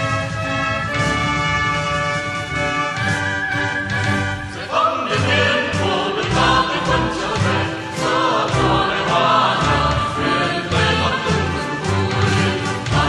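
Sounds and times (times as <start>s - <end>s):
choir singing with orchestra: 0.0s - 13.0s.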